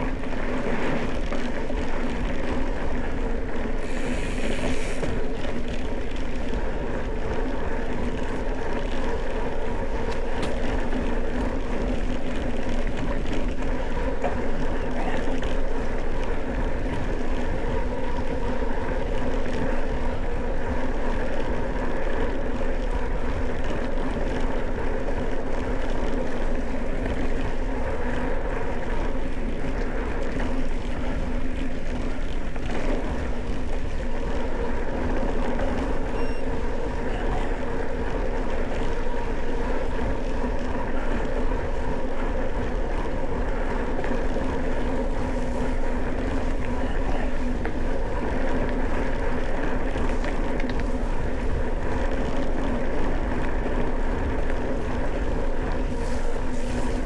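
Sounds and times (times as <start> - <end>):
bike tyres on dirt track: 0.0 - 57.0.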